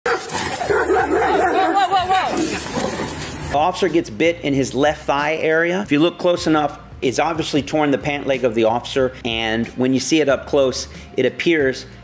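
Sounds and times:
dog barking and crying: 0.0s - 3.5s
people's raised voices: 0.3s - 3.0s.

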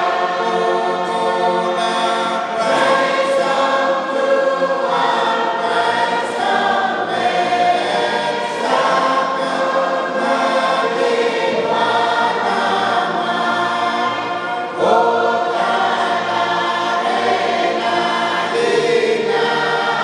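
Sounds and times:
congregation singing a hymn: 0.0s - 20.0s.

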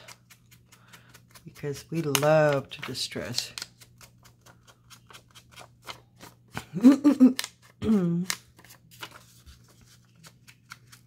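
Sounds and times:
person vocal sounds: 7.8s - 8.4s.

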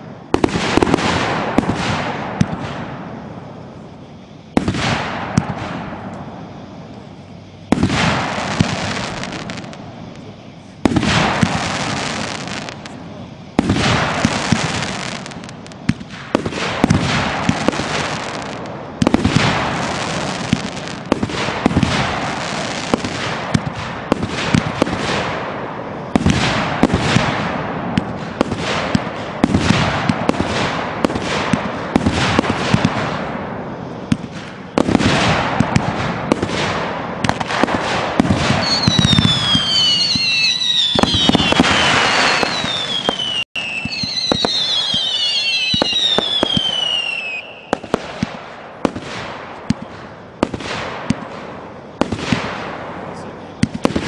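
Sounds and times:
fireworks launching and bursting: 0.0s - 54.0s
firework whistles falling in pitch: 4.5s - 25.3s, 37.2s - 48.5s.

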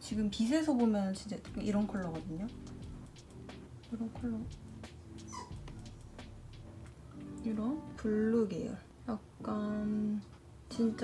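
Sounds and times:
faint steady low tones: 1.4s - 11.0s
high-pitched squeak: 5.2s - 5.6s.

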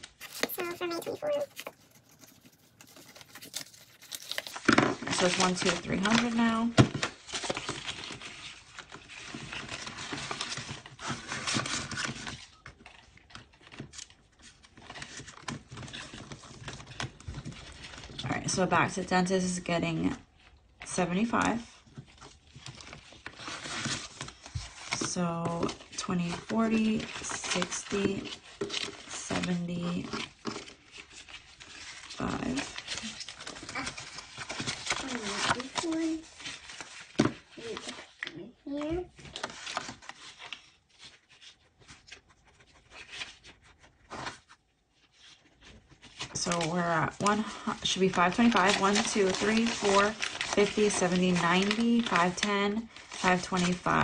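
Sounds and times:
paper banknotes rustling: 0.0s - 14.2s, 21.2s - 54.0s.

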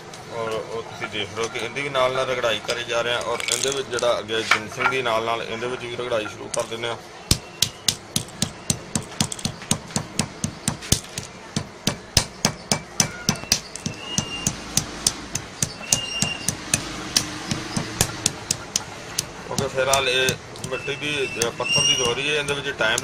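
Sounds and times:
pestle pounding in stone mortar: 7.3s - 23.0s.

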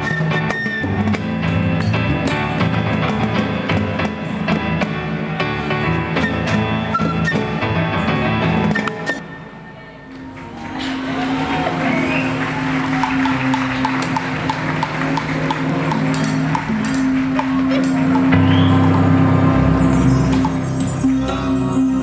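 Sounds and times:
latin jazz band music: 0.0s - 9.4s, 10.2s - 22.0s.

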